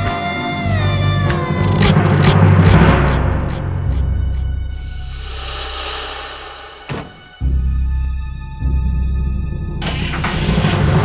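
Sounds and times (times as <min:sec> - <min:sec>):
dramatic background music: 0:01.7 - 0:11.0
rush of sound: 0:04.8 - 0:07.7.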